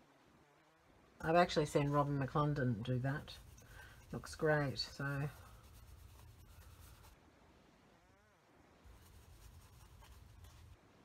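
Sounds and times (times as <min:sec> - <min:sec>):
paintbrush scratching and rubbing: 0:01.8 - 0:07.2, 0:08.9 - 0:10.8.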